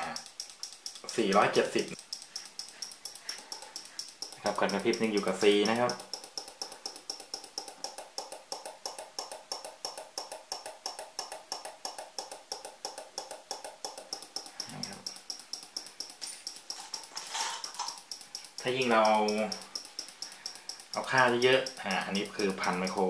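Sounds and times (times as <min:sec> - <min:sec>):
relay clicking rapidly: 0:00.0 - 0:23.0.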